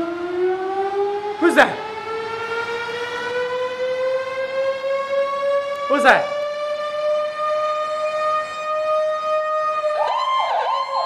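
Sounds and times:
ambulance siren wailing: 0:00.0 - 0:11.0.

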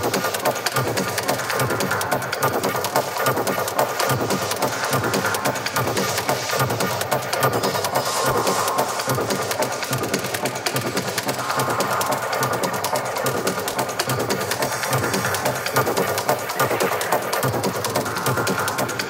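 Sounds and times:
fast ticking hi-hats: 0:00.0 - 0:19.0
techno track with driving beat: 0:00.0 - 0:19.0.

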